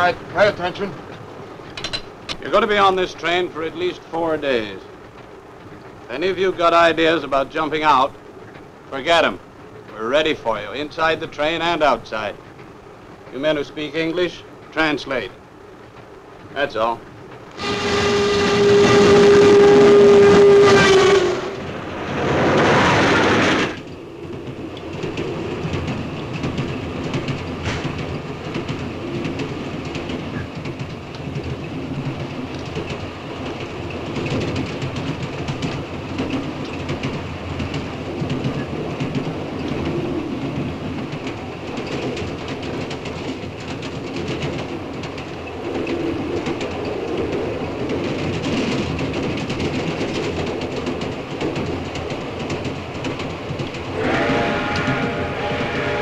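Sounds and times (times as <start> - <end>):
wheels clattering over rail joints: 0.0 - 20.7, 21.5 - 56.0
train rumble: 0.0 - 56.0.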